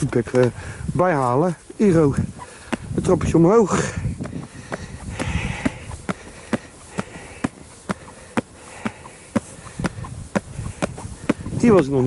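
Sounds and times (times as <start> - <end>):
footsteps on concrete steps: 0.0 - 12.0.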